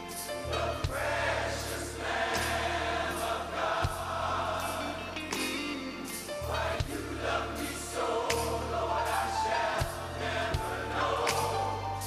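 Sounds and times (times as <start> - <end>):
choir singing gospel music: 0.0 - 12.0.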